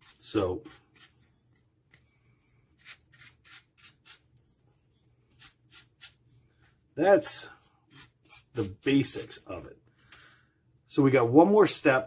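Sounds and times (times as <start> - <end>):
brush scratching foam: 0.0 - 1.6, 2.8 - 6.3, 7.6 - 9.5.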